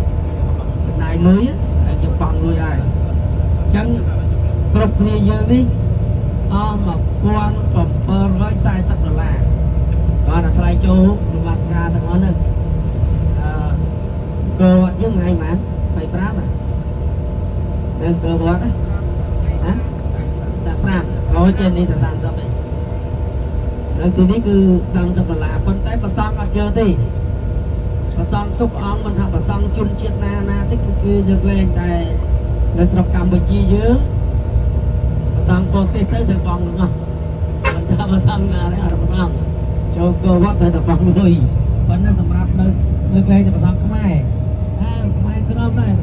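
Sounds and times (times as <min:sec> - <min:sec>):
bus engine and road rumble: 0:00.0 - 0:46.0.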